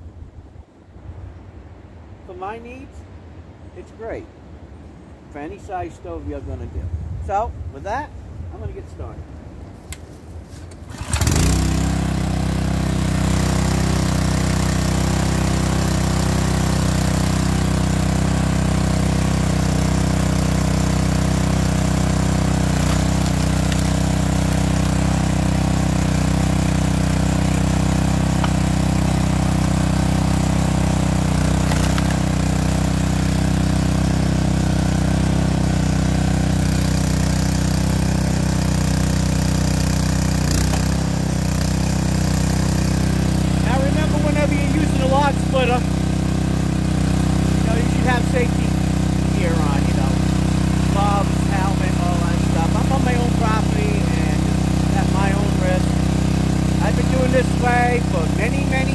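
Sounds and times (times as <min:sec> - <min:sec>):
gas engine starting and running: 0:10.6 - 0:58.9.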